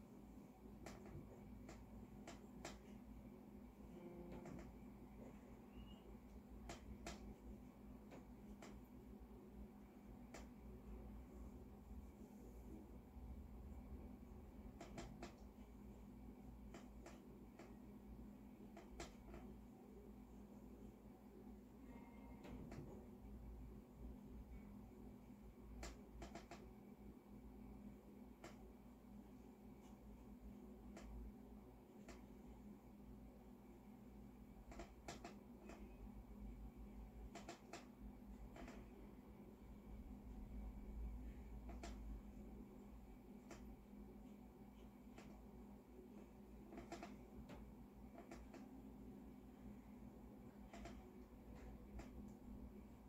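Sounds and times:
low room hum: 0.0 - 53.0.

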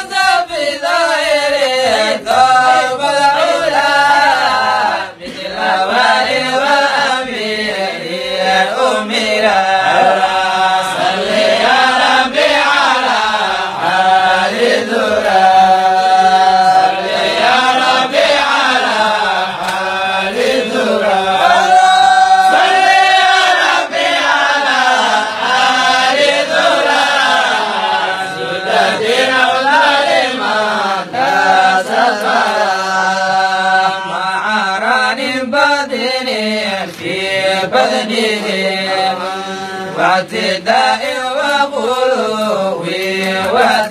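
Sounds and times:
man chanting into a microphone: 0.0 - 23.6, 24.2 - 43.9.

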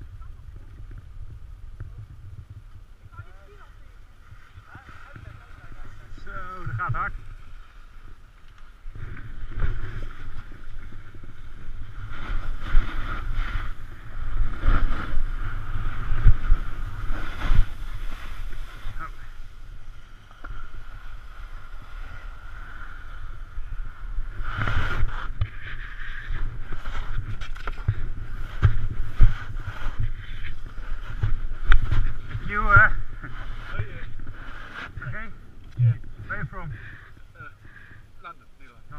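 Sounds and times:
wind buffeting microphone: 0.0 - 38.9
skis scraping over snow: 9.0 - 35.4.

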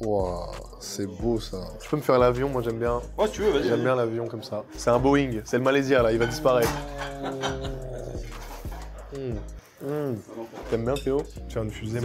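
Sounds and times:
man imitating airplane engine: 6.2 - 8.3.

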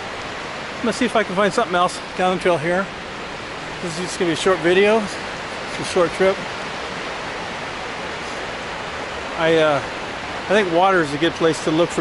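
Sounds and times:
rushing stream water: 0.0 - 12.0.

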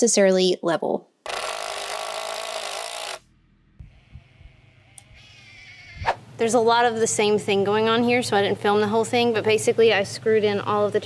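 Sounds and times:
cordless drill driving screw: 1.3 - 3.2.

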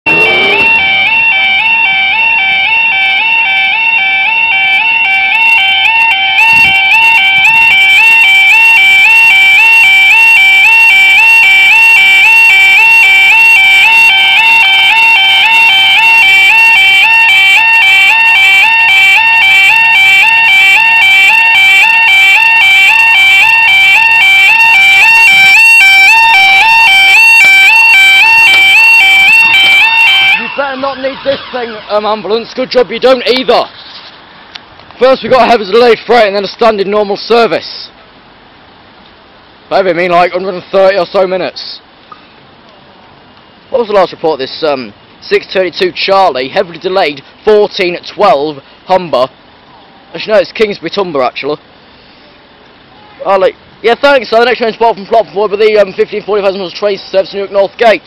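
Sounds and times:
two-tone electronic warning warble: 0.1 - 33.1.

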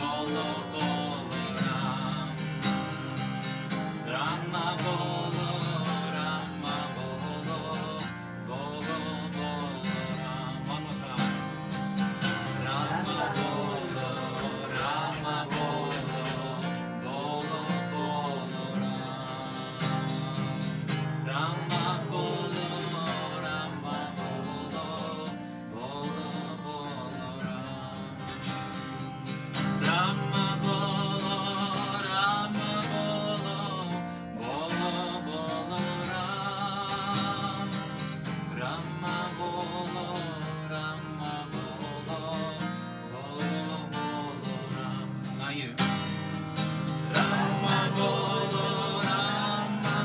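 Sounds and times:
acoustic guitar strumming: 0.0 - 50.0
group devotional chanting: 0.0 - 50.0.

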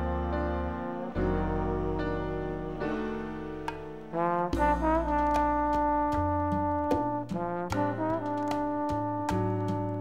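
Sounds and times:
brass section playing chords: 0.0 - 10.0
steady percussion beat: 4.4 - 10.0.

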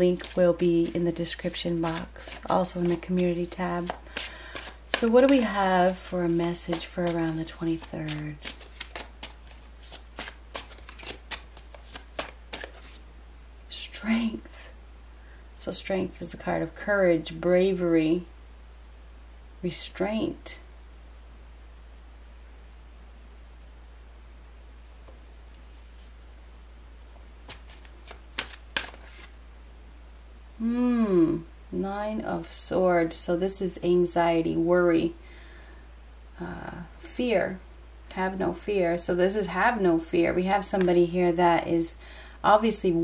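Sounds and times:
cards being shuffled: 0.0 - 13.0, 27.4 - 29.4.

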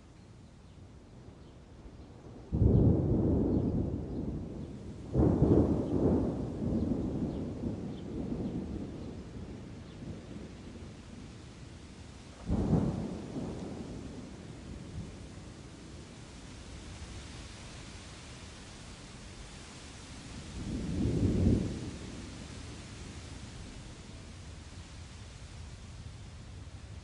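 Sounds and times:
rain hiss: 0.0 - 27.0
thunder claps rumbling: 2.5 - 10.9, 12.4 - 16.0.

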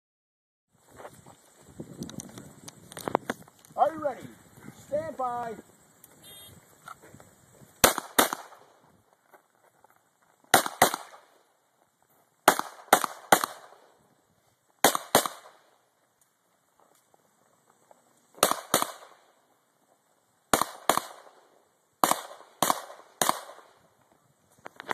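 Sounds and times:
pistol shots: 7.8 - 8.6, 10.5 - 11.3, 12.5 - 13.8, 14.8 - 15.6, 18.4 - 19.2, 20.5 - 21.4, 22.0 - 23.7.

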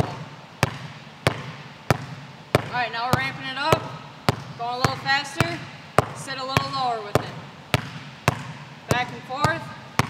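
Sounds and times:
basketball bouncing on gym floor: 0.0 - 10.0.

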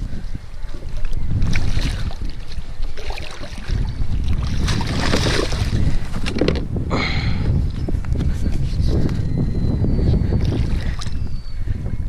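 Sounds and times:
wind buffeting microphone: 0.0 - 12.0
water splashing against kayak: 0.6 - 6.6.

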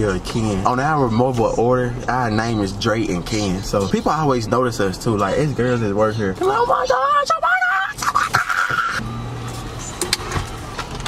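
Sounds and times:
vehicle idling hum: 0.0 - 11.0.

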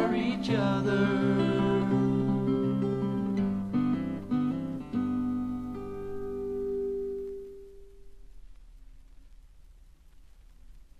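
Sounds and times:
acoustic guitar chords ringing: 0.0 - 8.2
record surface noise: 0.0 - 10.9.

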